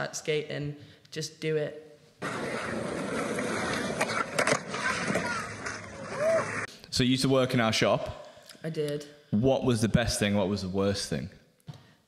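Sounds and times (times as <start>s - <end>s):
skateboard wheels on rough tarmac: 2.2s - 6.7s.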